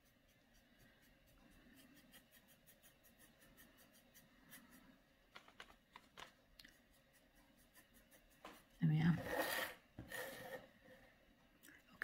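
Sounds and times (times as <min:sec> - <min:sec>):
board scraping on wooden table: 0:09.2 - 0:10.7.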